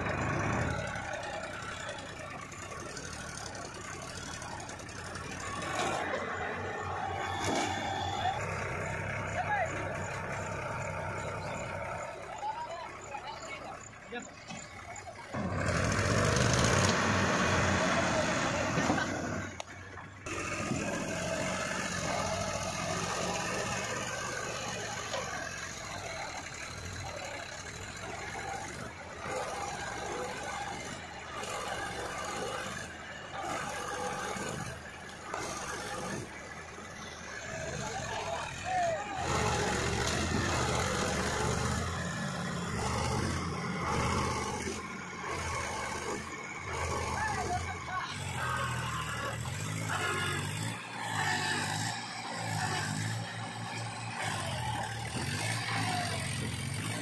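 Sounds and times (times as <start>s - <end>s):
tractor diesel engine under load: 0.0s - 57.0s
men's voices: 16.9s - 57.0s.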